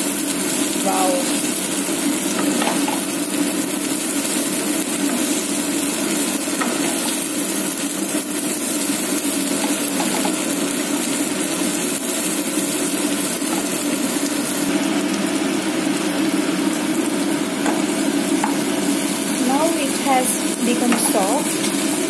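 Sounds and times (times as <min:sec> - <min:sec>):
vegetables sizzling in hot oil: 0:00.0 - 0:22.0
wooden spatula scraping wok: 0:06.6 - 0:07.3.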